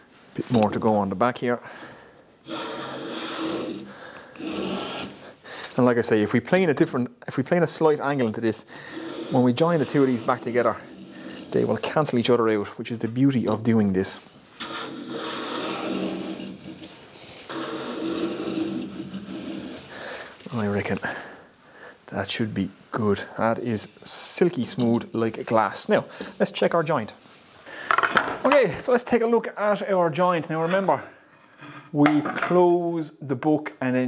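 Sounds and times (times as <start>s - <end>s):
hand plane cutting wood: 2.4s - 5.3s, 8.8s - 12.1s, 14.6s - 20.2s.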